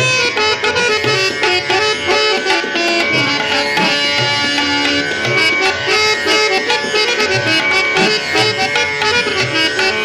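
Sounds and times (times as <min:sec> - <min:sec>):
harmonium melody: 0:00.0 - 0:10.0
tabla strokes: 0:00.0 - 0:10.0.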